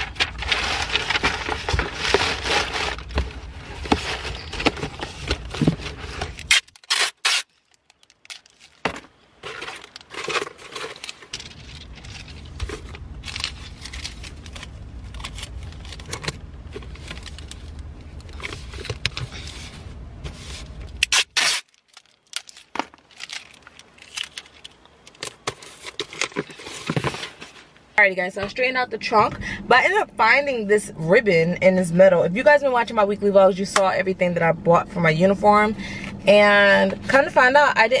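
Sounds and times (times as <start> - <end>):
cardboard box scraping: 0.0 - 6.5, 25.6 - 27.7
paper rustling: 0.0 - 6.8, 7.6 - 21.0, 21.6 - 27.8.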